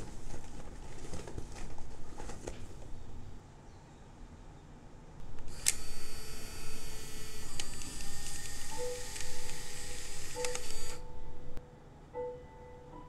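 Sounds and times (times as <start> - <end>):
camera motor whirring: 5.2 - 11.1
camera shutter clicks: 5.4 - 11.1
soft piano notes: 8.7 - 13.0.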